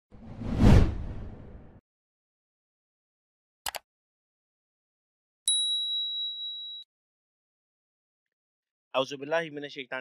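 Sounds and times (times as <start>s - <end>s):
whoosh with deep boom: 0.2s - 1.8s.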